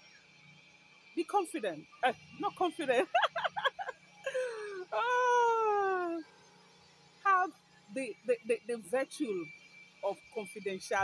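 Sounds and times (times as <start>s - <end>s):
woman laughing: 2.8s - 6.2s.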